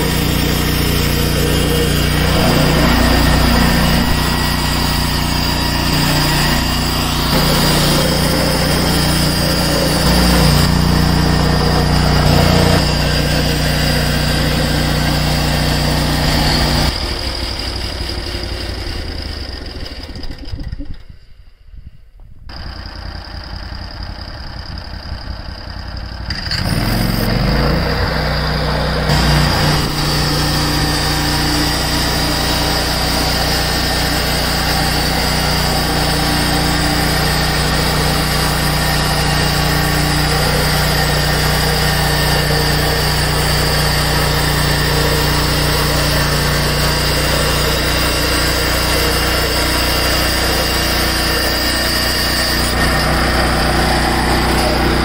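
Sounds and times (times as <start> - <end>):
blade sawing wood: 0.0 - 19.4, 26.4 - 55.0
bandsaw mill engine running: 0.0 - 21.0, 22.5 - 55.0.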